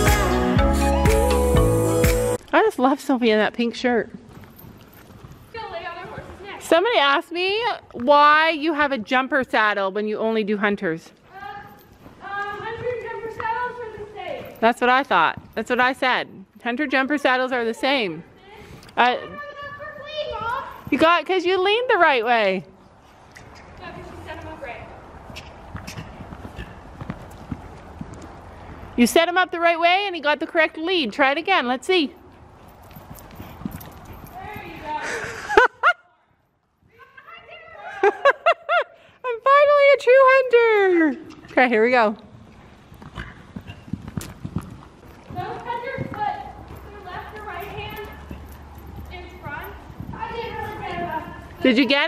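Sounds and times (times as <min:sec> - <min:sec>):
horse hoofbeats on sand: 0:03.4 - 0:10.4, 0:11.0 - 0:35.3, 0:39.9 - 0:52.0
voices talking: 0:45.3 - 0:52.0.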